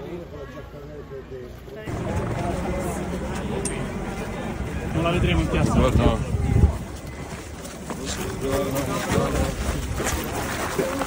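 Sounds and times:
people talking: 0:00.0 - 0:11.0
wind rumble on microphone: 0:04.6 - 0:07.3.

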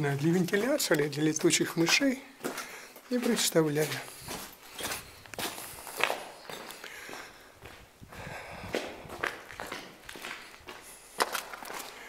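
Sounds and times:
footsteps on gritty concrete: 0:00.0 - 0:12.0.

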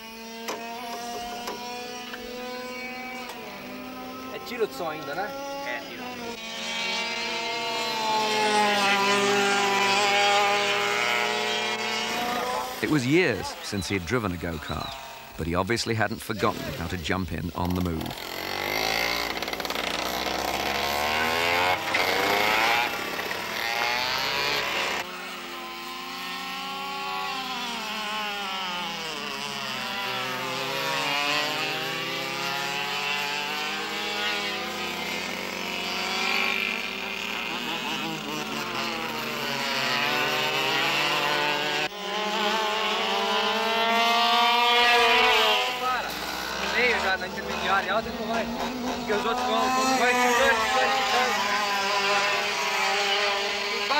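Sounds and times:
go-kart engines revving: 0:00.0 - 0:53.9.

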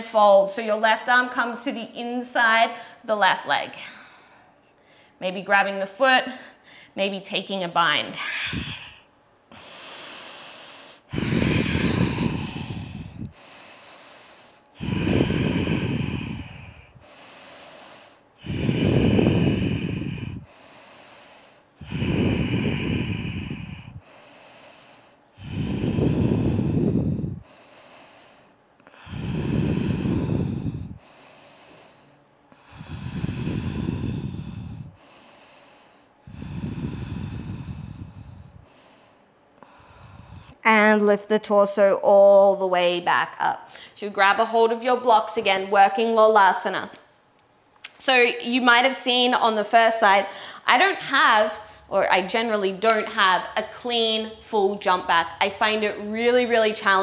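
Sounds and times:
woman breathing through the throat: 0:03.7 - 0:05.2, 0:06.3 - 0:07.0, 0:08.2 - 0:40.6, 0:43.7 - 0:44.0, 0:50.0 - 0:51.9.

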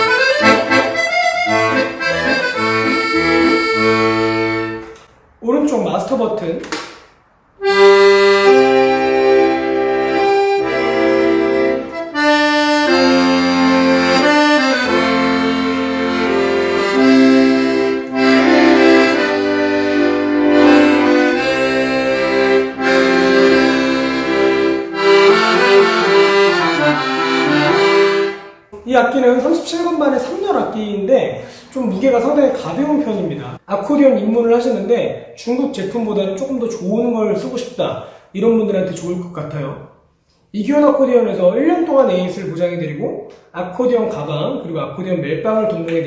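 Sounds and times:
accordion playing a tune: 0:00.0 - 0:05.1, 0:07.6 - 0:28.7.

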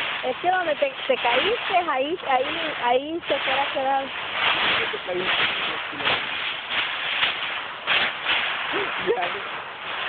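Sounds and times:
rustling against microphone: 0:00.0 - 0:10.0
snatches of voices: 0:08.6 - 0:09.6.

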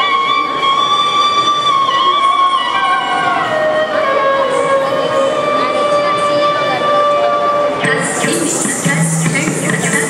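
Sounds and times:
bamboo flute holding notes: 0:00.0 - 0:07.8.

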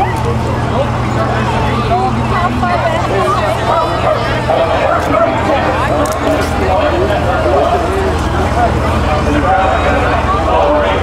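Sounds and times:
bus engine hum: 0:00.0 - 0:11.0
crowd chatter: 0:00.0 - 0:11.0.

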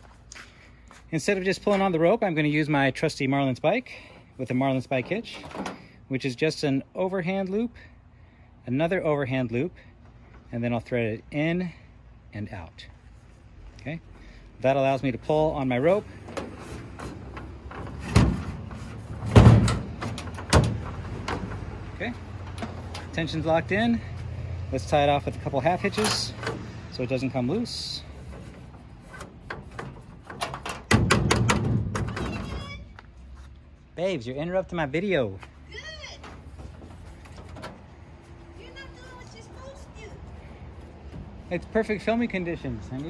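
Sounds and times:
rustling: 0:36.0 - 0:41.6.

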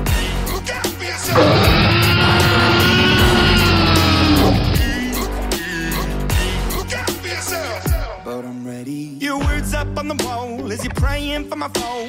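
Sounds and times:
sustained rising and falling tone: 0:01.3 - 0:05.4
loud instrumental music: 0:01.3 - 0:08.2.

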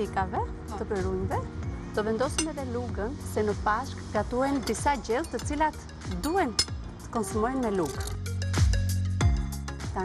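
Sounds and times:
background music: 0:00.0 - 0:10.0
cutlery clinking: 0:02.3 - 0:02.6.

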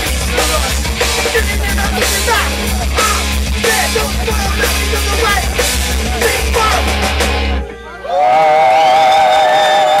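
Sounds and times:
electric guitar feedback tones: 0:00.0 - 0:09.5.

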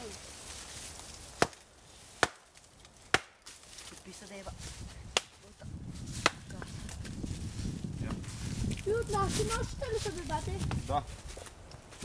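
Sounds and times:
hatchet chopping wood: 0:01.3 - 0:03.6, 0:05.1 - 0:05.4, 0:06.1 - 0:06.7.

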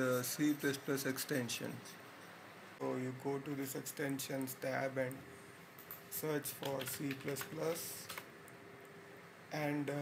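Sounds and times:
keyboard keys typing: 0:05.8 - 0:08.3.

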